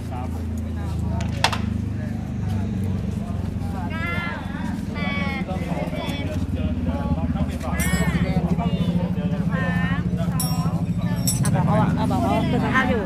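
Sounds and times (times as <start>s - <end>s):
motorcycle engine idling: 0.0s - 13.0s
people talking: 0.0s - 13.0s.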